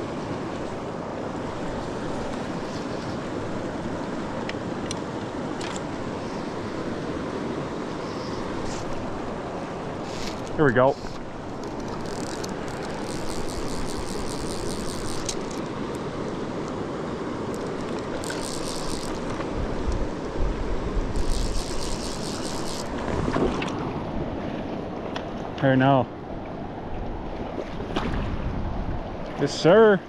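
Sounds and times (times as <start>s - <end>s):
river rushing: 0.0s - 25.6s
fly reel drag ratcheting: 8.0s - 9.2s, 10.0s - 16.4s, 17.5s - 20.1s, 21.1s - 23.1s.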